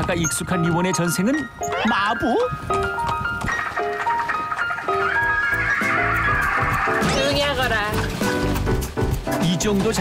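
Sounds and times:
light plucked background music: 0.0s - 10.0s.

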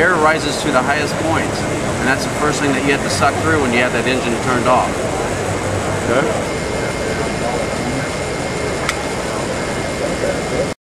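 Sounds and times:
exhibition hall hum: 0.0s - 10.8s
indistinct voices: 0.0s - 10.8s.

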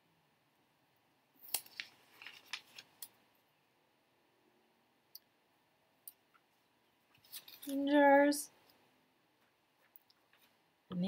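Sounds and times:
paper clicks and rustles: 1.4s - 3.2s, 7.1s - 7.8s.

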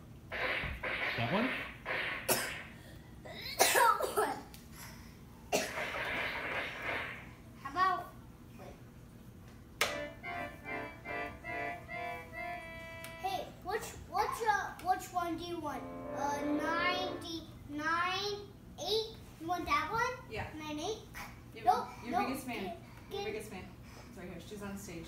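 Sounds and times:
toy keyboard electronic notes: 9.9s - 13.3s
child's voice: 13.2s - 23.4s.

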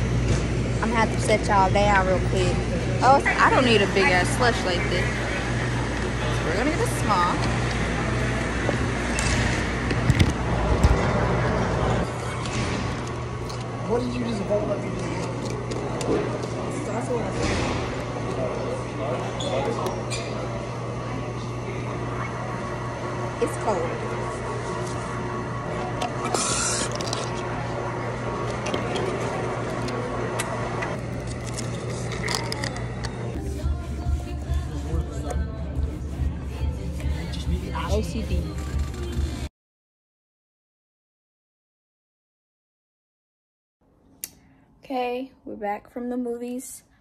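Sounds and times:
steady low hum: 0.0s - 39.5s
phone rubbing against coat: 33.4s - 39.1s.

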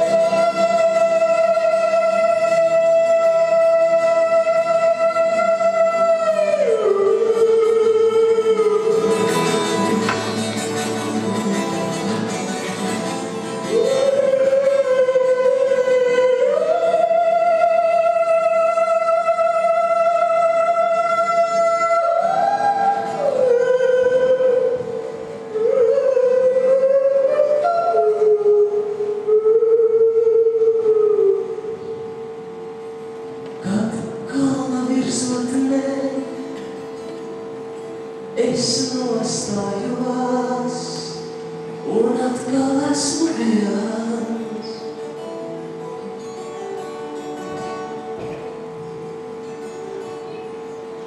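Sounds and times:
man singing long high note: 0.0s - 10.0s, 13.6s - 31.7s, 33.6s - 36.6s, 38.4s - 45.0s
guitar accompaniment: 0.0s - 51.0s.

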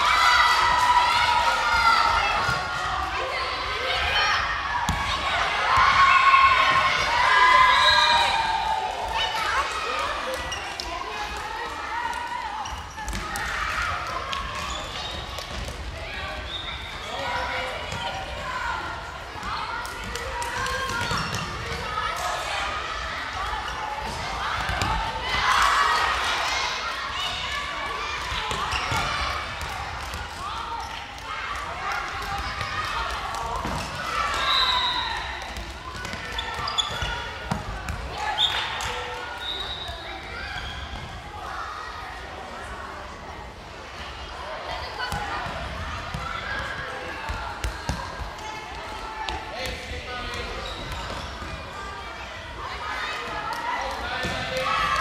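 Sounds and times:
children shouting and chattering: 0.0s - 55.0s
ball bouncing on hall floor: 35.4s - 38.2s.

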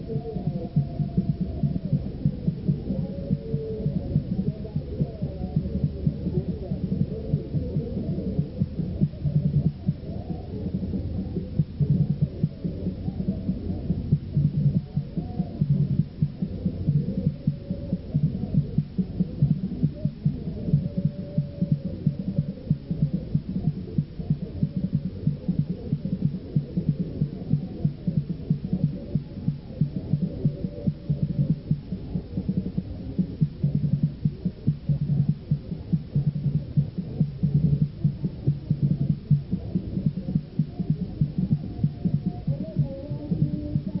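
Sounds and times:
blur of voices: 0.0s - 44.0s
muffled low thumping: 0.0s - 44.0s.

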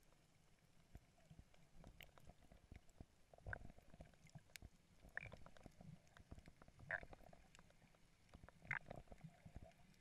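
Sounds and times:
faint clicks: 0.8s - 10.0s.

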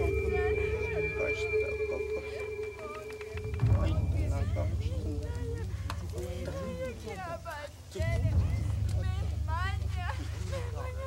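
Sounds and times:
chirps and whistles: 0.0s - 3.6s
steady droning tone: 0.0s - 6.4s
low rumble: 0.0s - 6.9s.

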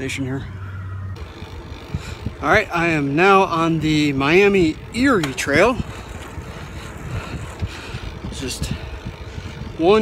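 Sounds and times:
wind rushing over microphone: 0.0s - 10.0s
low rumble: 0.4s - 9.9s.

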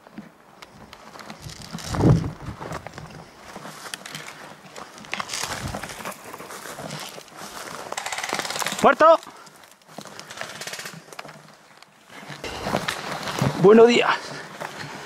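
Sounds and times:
branches rustling and crackling: 0.0s - 15.0s.

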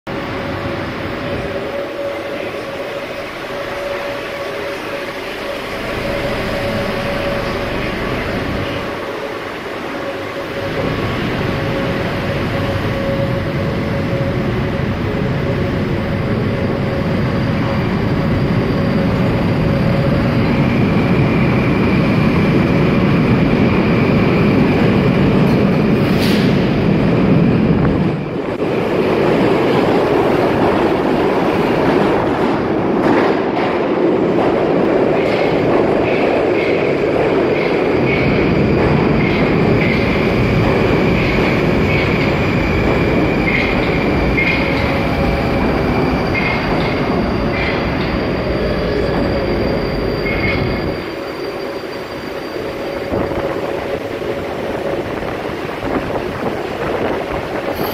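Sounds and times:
train wheels rumbling on rails: 0.1s - 57.9s
high wheel squeal: 37.5s - 53.8s, 57.6s - 57.9s.

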